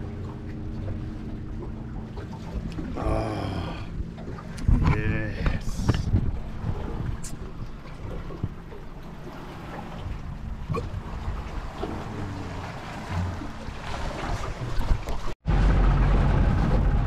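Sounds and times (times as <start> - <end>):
wind buffeting microphone: 3.7 - 17.0.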